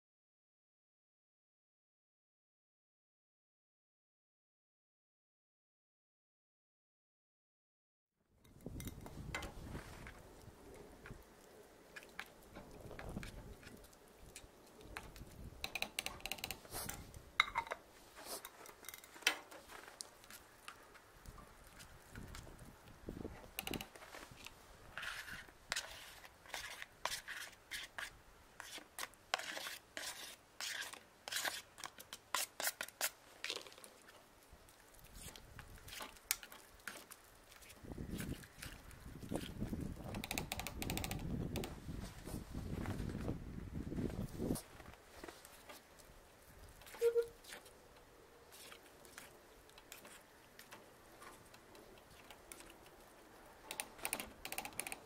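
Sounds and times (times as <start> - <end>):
spoon scraping metal pot: 25.0 - 31.6.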